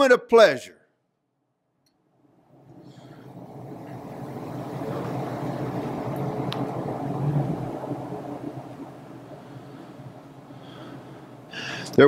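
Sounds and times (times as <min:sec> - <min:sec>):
low rumbling hum: 0:01.9 - 0:12.0.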